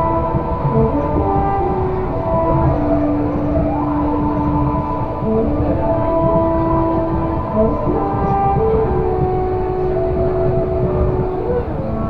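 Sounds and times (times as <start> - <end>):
background music tones: 0.0 - 12.0
monorail rumbling on track: 0.0 - 12.0.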